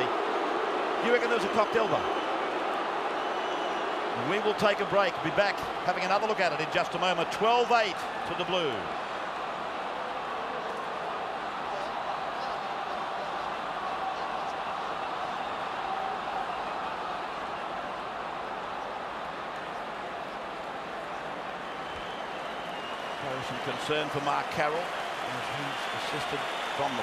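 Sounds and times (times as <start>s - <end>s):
stadium crowd noise: 0.0s - 27.0s.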